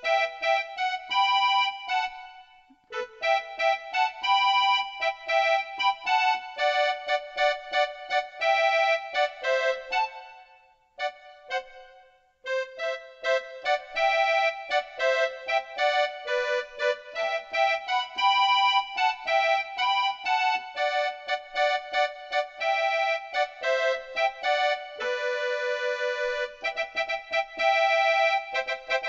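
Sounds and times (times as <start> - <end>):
electronic keyboard melody: 0.0 - 29.0.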